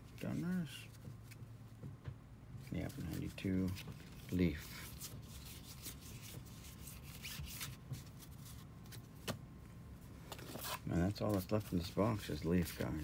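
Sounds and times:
cards rustling and flicking: 2.6s - 9.4s, 10.2s - 13.0s.

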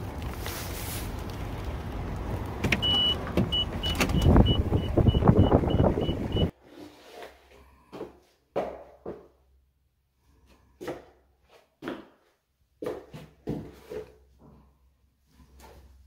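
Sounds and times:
car warning chime beeps: 2.7s - 6.5s.

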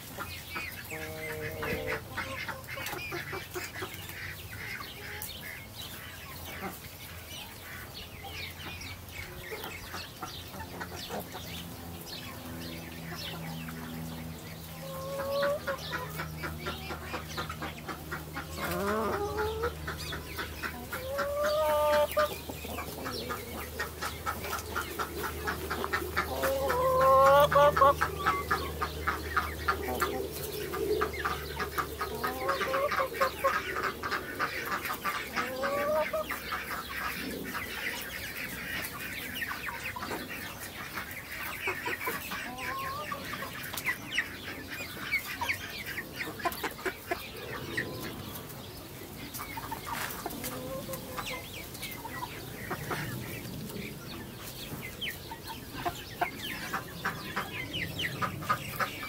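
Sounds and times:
chickens clucking: 0.0s - 59.0s.

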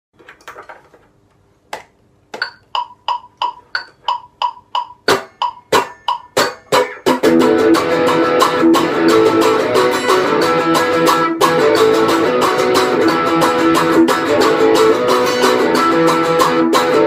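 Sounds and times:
metronome clicking: 2.3s - 17.0s
electric guitar strumming chords: 4.1s - 17.0s.

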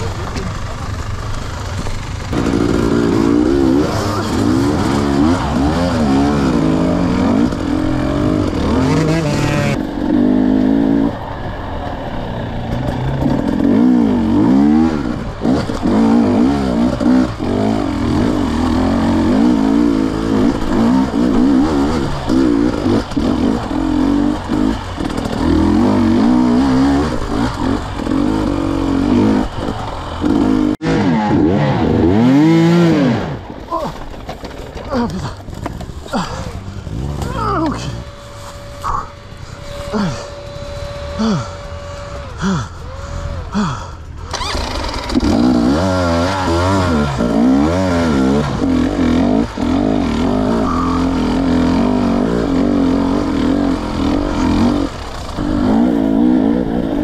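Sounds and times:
dirt bike engine revving: 0.0s - 57.0s.

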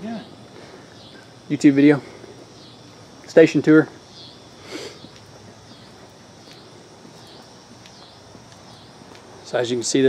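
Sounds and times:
pulsing insect chorus: 0.0s - 10.0s.

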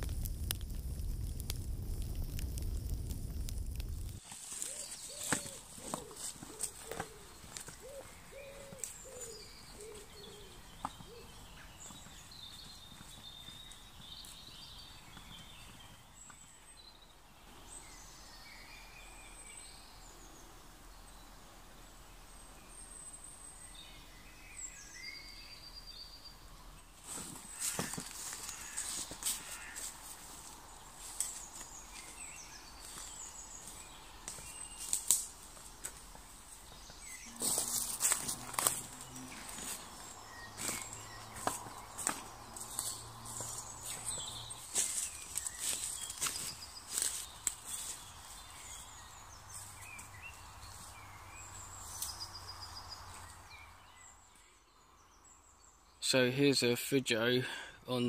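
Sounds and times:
small birds chirping: 0.0s - 58.0s
footsteps through leaf litter: 4.2s - 7.7s, 27.0s - 36.3s, 37.0s - 52.1s.

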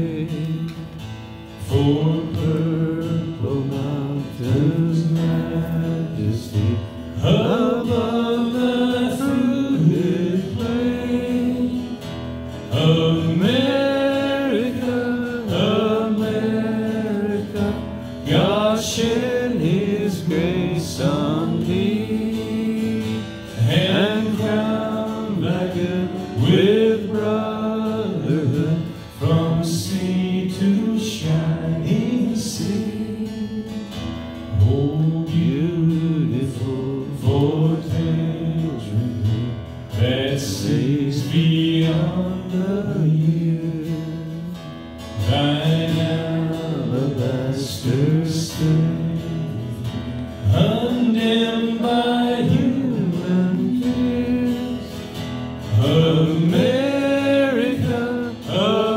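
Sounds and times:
man singing through microphone: 0.0s - 58.9s
strummed acoustic guitar: 0.0s - 58.9s.

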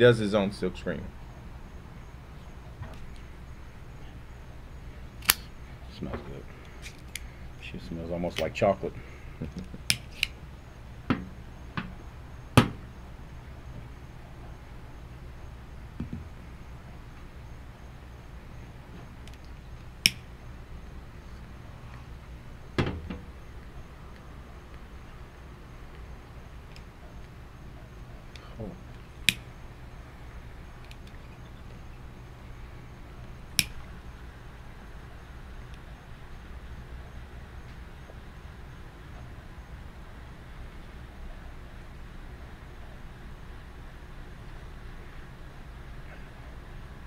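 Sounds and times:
low steady hum: 0.0s - 47.0s
cigar cutter snips: 5.2s - 5.5s, 9.5s - 10.4s, 33.6s - 33.8s
lighter sparking clicks: 5.2s - 5.5s, 9.6s - 10.4s, 19.2s - 20.3s, 33.6s - 33.8s.

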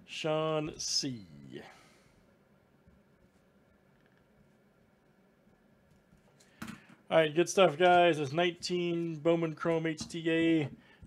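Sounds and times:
man speaking: 0.0s - 2.0s, 7.1s - 10.8s.

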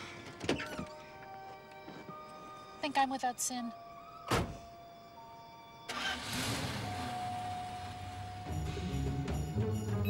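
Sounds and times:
vehicle engine starting and running: 5.9s - 9.8s
film score music: 7.7s - 10.0s.

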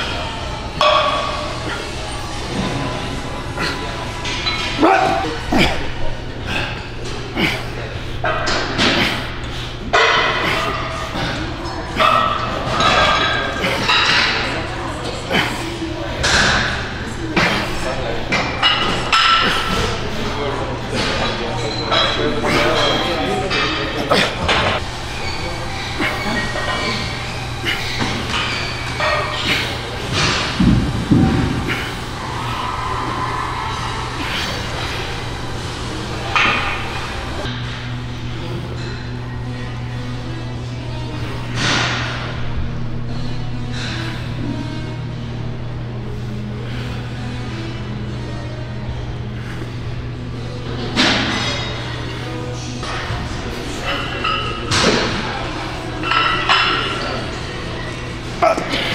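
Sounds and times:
metal weights clanking: 0.0s - 37.7s, 50.5s - 58.9s
voices and shouts: 2.9s - 6.0s, 31.7s - 35.4s.

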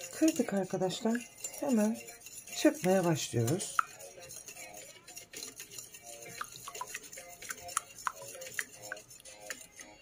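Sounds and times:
whisk ticking against ceramic bowl: 0.0s - 10.0s.

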